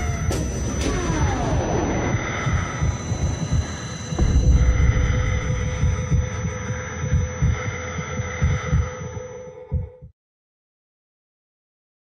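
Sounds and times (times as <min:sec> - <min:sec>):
held droning tone: 0:00.0 - 0:10.1
low heartbeat-like thuds: 0:00.0 - 0:10.2.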